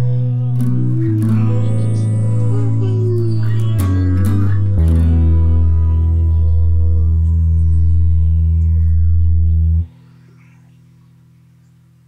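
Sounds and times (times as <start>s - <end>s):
rock chord on guitar and bass: 0.0s - 9.9s.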